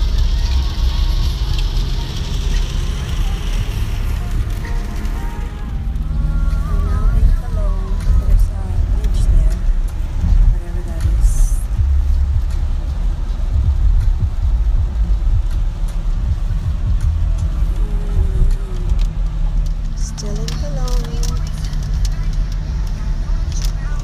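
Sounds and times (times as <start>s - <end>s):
car road and engine rumble: 0.0s - 24.0s.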